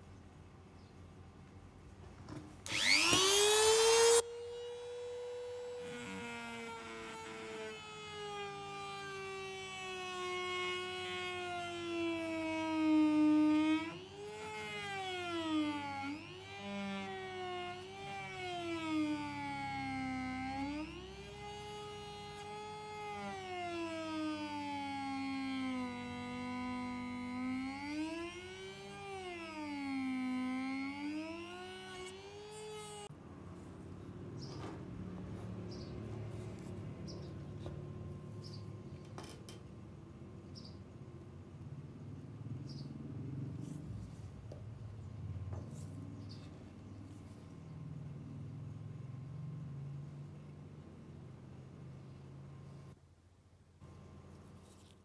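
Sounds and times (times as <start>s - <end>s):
rotary tool grinding metal: 2.6s - 4.2s.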